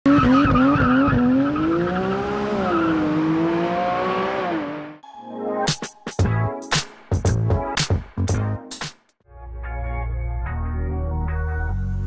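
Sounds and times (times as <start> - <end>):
car engine accelerating hard: 0.1 - 5.0.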